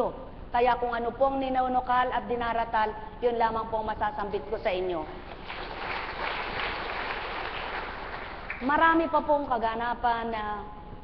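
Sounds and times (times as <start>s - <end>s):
audience clapping: 5.3s - 8.7s.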